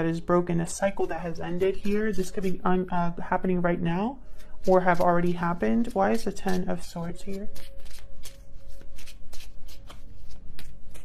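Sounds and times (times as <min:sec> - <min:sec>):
cards being shuffled: 0:01.0 - 0:02.6, 0:04.3 - 0:11.0.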